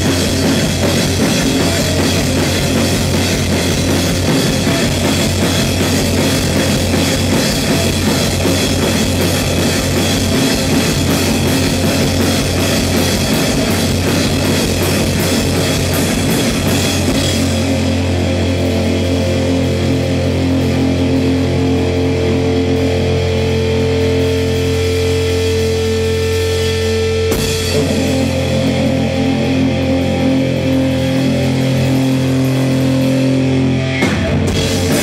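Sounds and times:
droning electric guitar and bass: 0.0s - 35.0s
drums: 0.0s - 35.0s.

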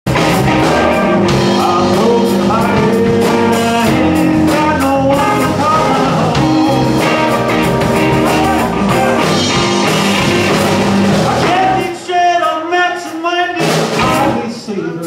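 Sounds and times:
drum kit: 0.0s - 15.0s
electric guitars: 0.1s - 14.5s.

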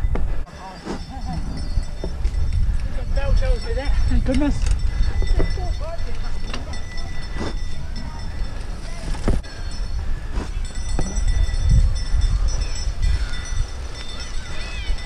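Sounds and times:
wind and ground rumble: 0.0s - 15.0s
bike knocking and rattling: 1.0s - 9.4s.

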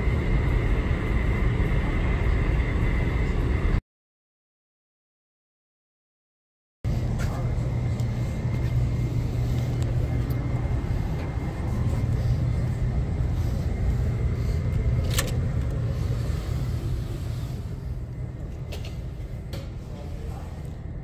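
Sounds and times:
steady low rumble: 0.0s - 3.8s, 6.8s - 21.0s.

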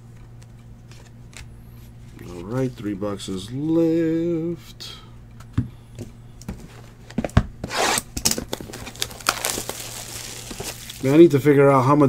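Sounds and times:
wrapping crinkling and tearing: 7.9s - 11.4s.

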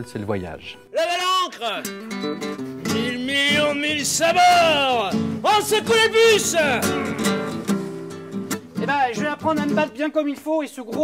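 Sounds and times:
acoustic guitar chords strummed: 1.8s - 10.1s.

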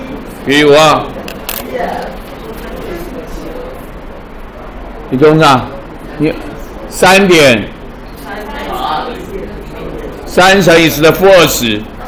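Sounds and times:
quiet voices murmuring: 0.0s - 12.0s.

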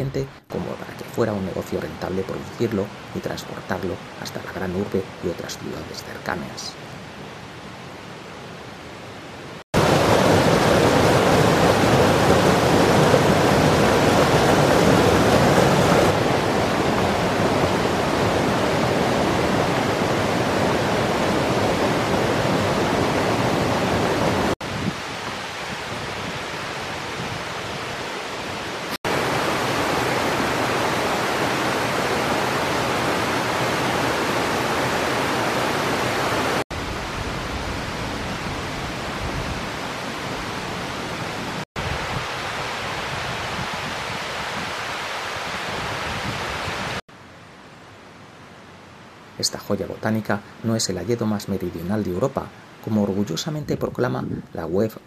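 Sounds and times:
stream water rushing: 0.0s - 53.2s.

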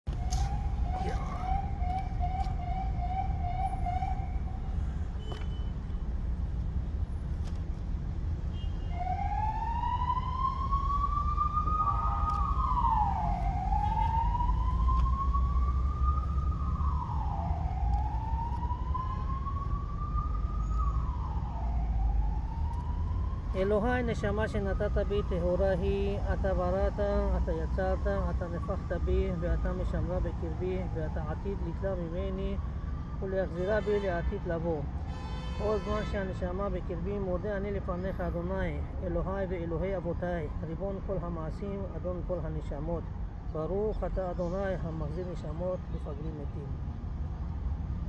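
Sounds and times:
emergency vehicle siren wailing: 0.1s - 5.3s, 8.8s - 35.2s, 35.8s - 46.7s.

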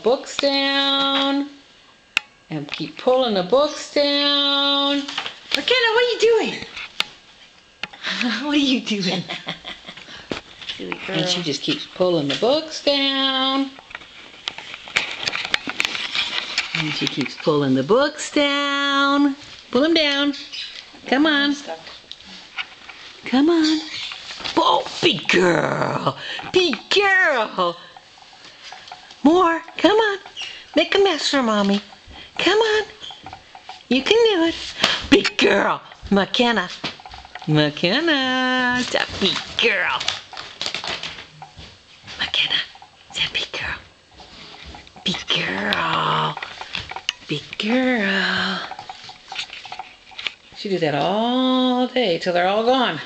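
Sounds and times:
paper rustling: 38.6s - 41.8s.

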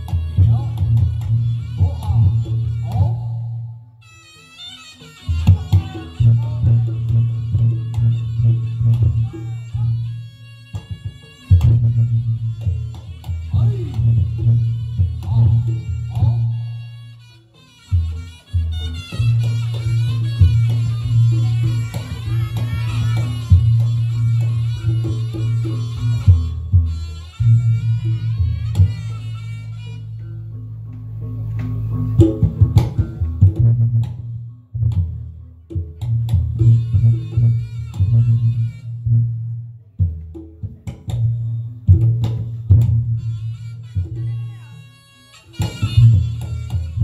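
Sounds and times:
reed pipe melody: 0.0s - 47.0s
gong-chime beat: 17.9s - 39.2s
drum strokes: 17.9s - 39.4s.

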